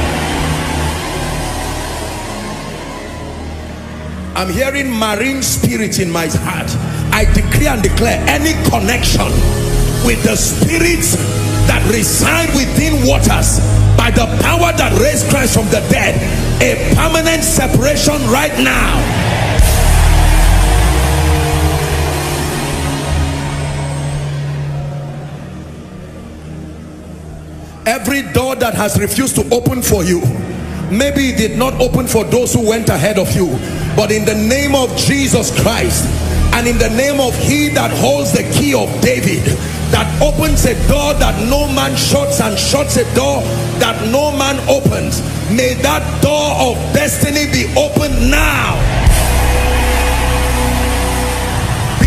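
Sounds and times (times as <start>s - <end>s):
roar of large congregation: 0.0s - 52.0s
sustained low music chords: 0.0s - 52.0s.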